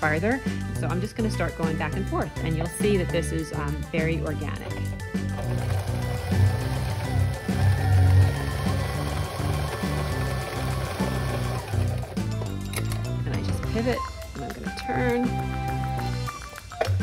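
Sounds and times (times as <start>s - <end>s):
background music with bass line: 0.0s - 17.0s
electric sewing machine running: 4.6s - 12.6s.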